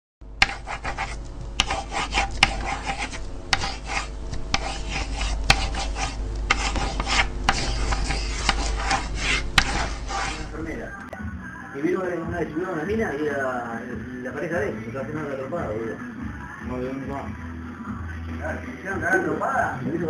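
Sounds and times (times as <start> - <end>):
steady low hum: 0.2 - 11.2
scratchy film crackle: 0.4 - 10.6.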